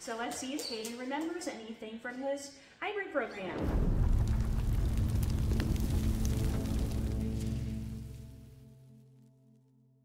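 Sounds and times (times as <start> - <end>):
explosion blast with crackling: 3.5 - 8.6
low drone: 3.7 - 8.9
music: 4.2 - 10.0.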